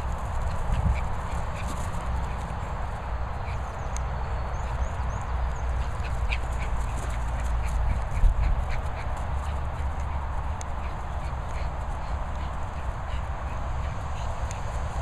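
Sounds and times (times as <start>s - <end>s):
dogs playing and scuffling: 0.0s - 15.0s
steady low rumble: 0.0s - 15.0s.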